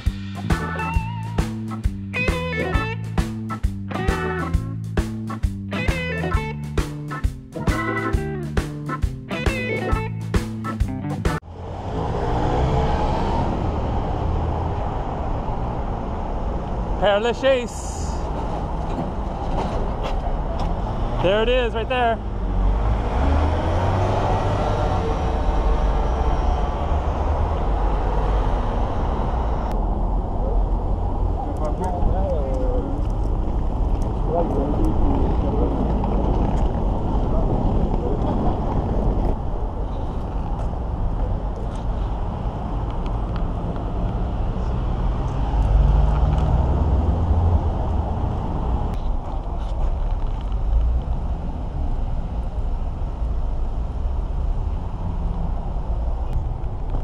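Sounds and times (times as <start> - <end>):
road traffic rumble: 0.0 - 57.0
people's voices: 34.0 - 41.9.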